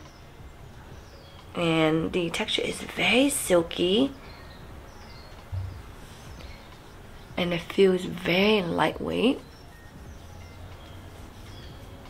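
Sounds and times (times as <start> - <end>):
soft low bump: 5.4 - 6.6.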